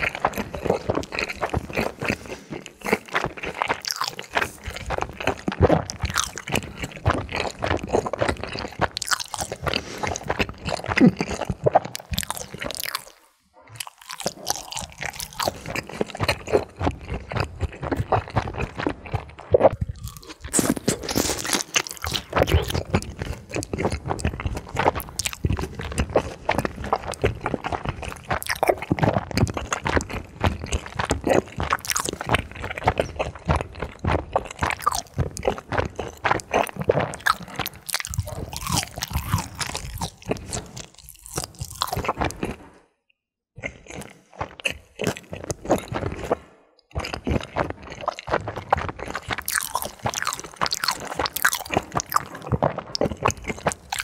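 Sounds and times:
wet sticky mouth sounds: 0:00.0 - 0:42.7, 0:43.6 - 0:54.0
crunchy chewing: 0:00.0 - 0:42.9, 0:43.6 - 0:54.0.

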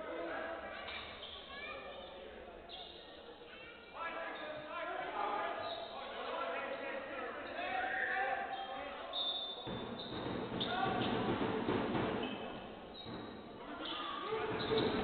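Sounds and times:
players' voices: 0:00.0 - 0:15.0
basketball bouncing on hardwood: 0:09.6 - 0:12.4.

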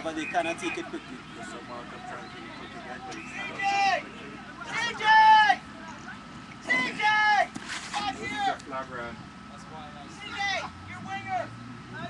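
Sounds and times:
distant shouted calls: 0:00.0 - 0:12.0
low steady hum: 0:00.0 - 0:12.0.

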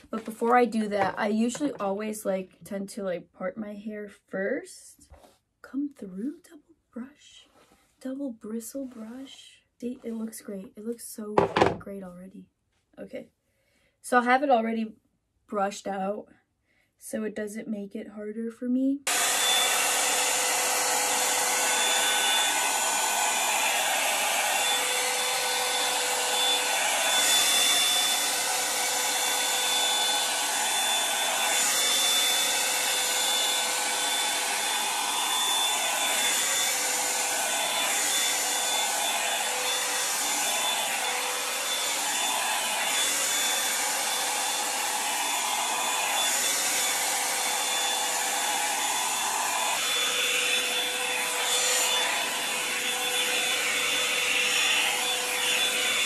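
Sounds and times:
hot-air brush blowing with motor whine: 0:19.1 - 0:56.0.

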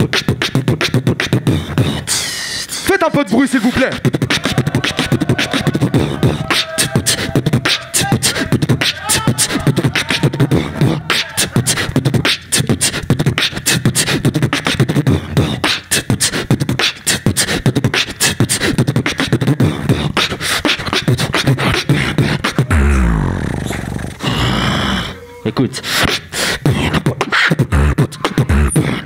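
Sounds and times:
beatboxing percussive mouth sounds: 0:00.0 - 0:29.0
wavering pitched vocal sound: 0:00.0 - 0:29.0
deep bass note sliding down: 0:22.6 - 0:24.7.

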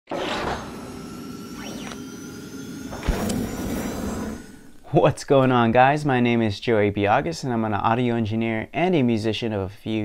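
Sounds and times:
swell: 0:00.1 - 0:05.0
quick pitch sweep: 0:00.2 - 0:05.1.

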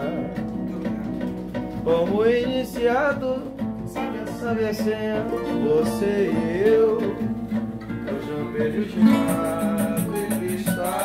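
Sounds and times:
man singing: 0:00.0 - 0:11.0
samba guitars playing: 0:00.0 - 0:11.0
light percussion hits: 0:07.4 - 0:11.0.

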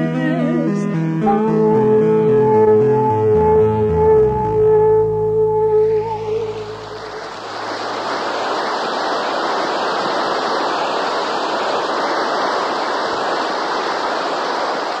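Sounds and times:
sustained music notes: 0:00.0 - 0:07.2
loud rushing noise: 0:05.9 - 0:15.0.

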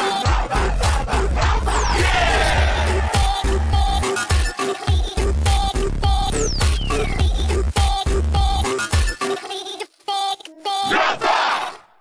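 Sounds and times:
pitched-down cartoon voices shouting: 0:01.7 - 0:03.4, 0:10.8 - 0:11.9.

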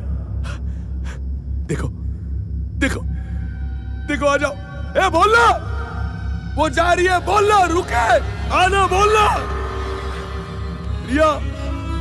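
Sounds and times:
steady low rumble: 0:00.0 - 0:12.0
man speaking: 0:01.6 - 0:02.0, 0:02.8 - 0:03.2, 0:04.1 - 0:05.8.

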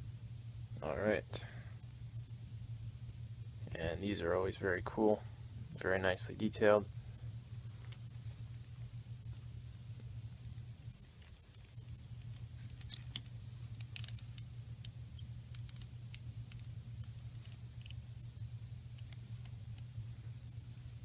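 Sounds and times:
steady low hum: 0:00.0 - 0:21.0
hands handling plastic toy: 0:11.1 - 0:14.5.

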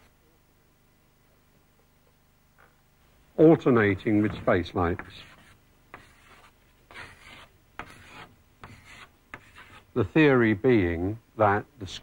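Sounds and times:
chalk scraping on blackboard: 0:04.1 - 0:09.9.

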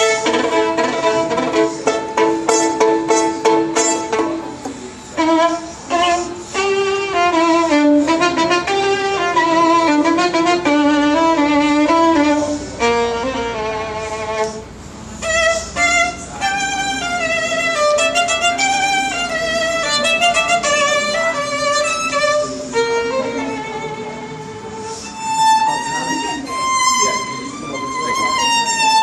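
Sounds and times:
solo violin: 0:00.0 - 0:29.0.

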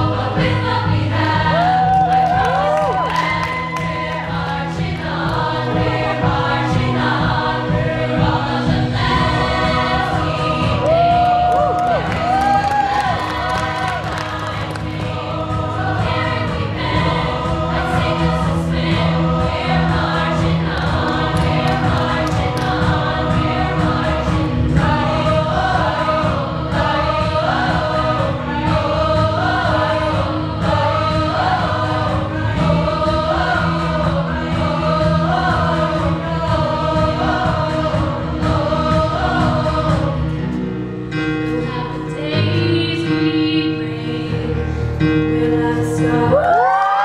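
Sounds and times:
choir singing a cappella: 0:00.0 - 0:47.0.

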